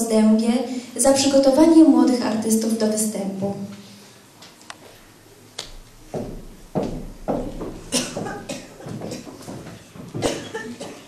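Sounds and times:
footsteps on stage floor: 3.4 - 11.0.

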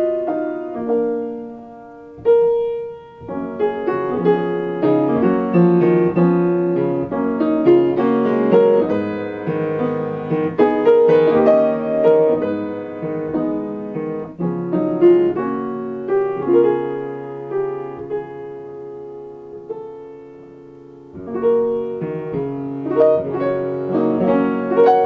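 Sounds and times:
solo piano lullaby: 0.0 - 25.0.

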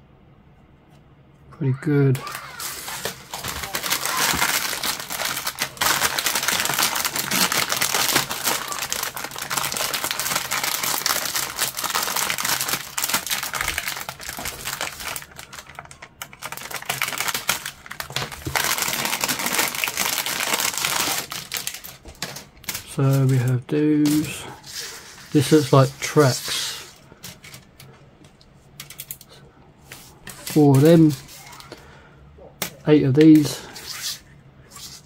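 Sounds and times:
plastic bag crinkling: 2.2 - 27.9.

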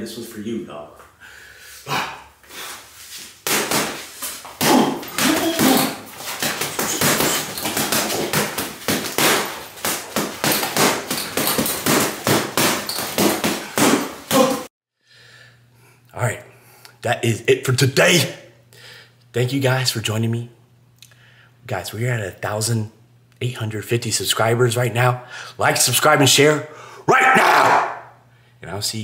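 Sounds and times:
boxing gloves punching heavy bag: 3.4 - 14.7.

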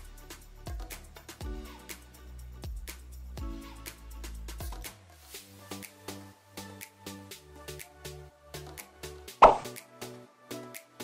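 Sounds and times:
background music with regular beat: 0.0 - 11.0
loud pop sound effect: 9.4 - 9.8.

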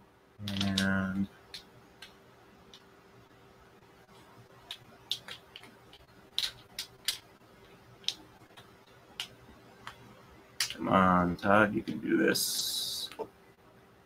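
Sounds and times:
faint steady hum: 0.0 - 14.0.

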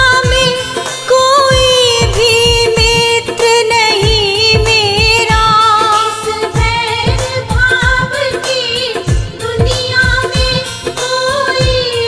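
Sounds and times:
steady drum beat: 0.0 - 12.0.

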